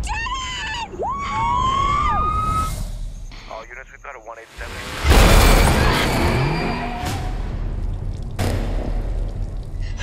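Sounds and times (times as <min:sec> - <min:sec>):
woman shouting excitedly: 0:00.0 - 0:02.3
police radio voice: 0:03.5 - 0:04.8.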